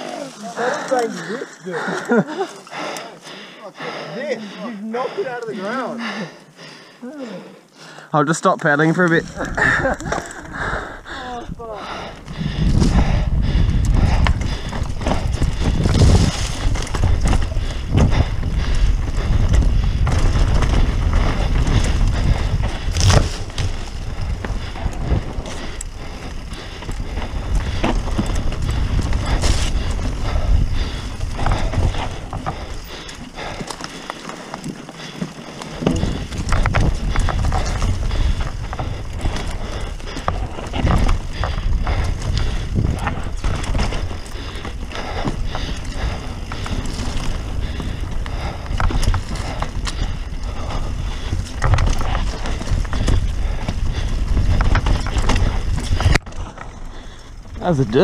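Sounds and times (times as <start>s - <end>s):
mountain bike rattling over rocks: 0.0s - 2.9s, 8.3s - 58.0s.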